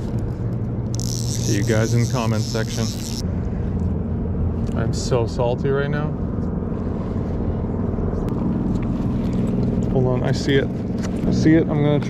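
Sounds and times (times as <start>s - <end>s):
low engine drone: 0.0s - 12.0s.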